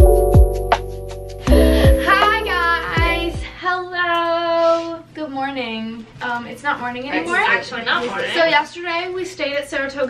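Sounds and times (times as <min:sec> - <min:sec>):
background music with bass line: 0:00.0 - 0:03.5.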